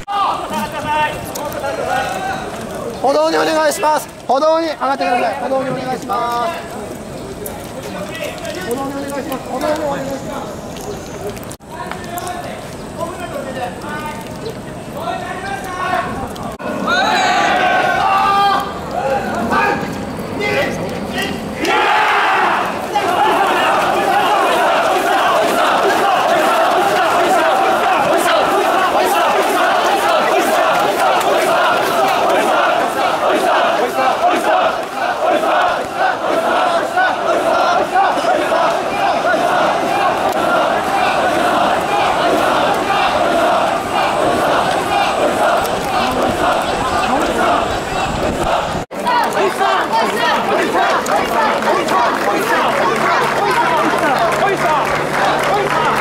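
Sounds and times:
crowd: 0:00.0 - 0:56.0
men shouting rhythmic call: 0:15.0 - 0:56.0.

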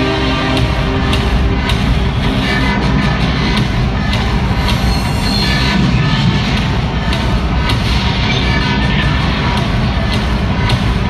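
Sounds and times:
dramatic music over sound system: 0:00.0 - 0:11.0.

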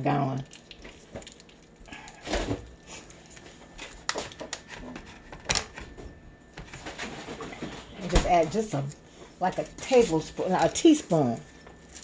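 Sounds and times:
foil wrapper crinkling: 0:00.4 - 0:06.0, 0:06.6 - 0:12.0.

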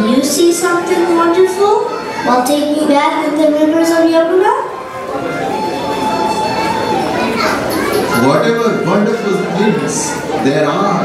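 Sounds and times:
children chattering: 0:00.0 - 0:11.0
held tone: 0:04.8 - 0:10.5.

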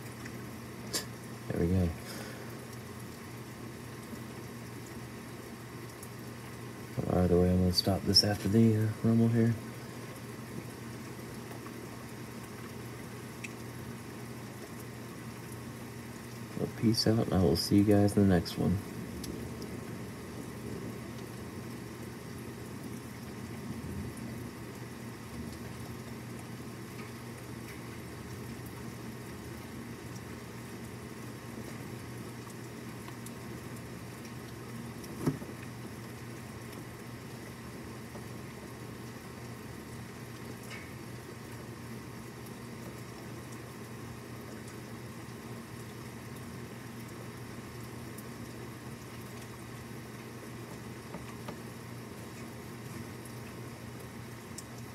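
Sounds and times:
steady rain: 0:00.0 - 0:54.9
wind: 0:00.0 - 0:54.9.

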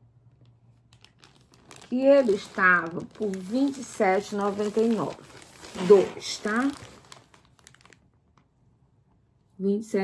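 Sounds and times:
plastic packaging crinkling: 0:00.3 - 0:08.6.

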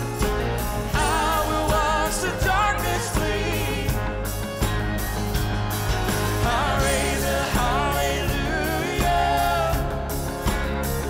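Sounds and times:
live worship band music: 0:00.0 - 0:11.0
woman singing lead: 0:00.8 - 0:04.4.

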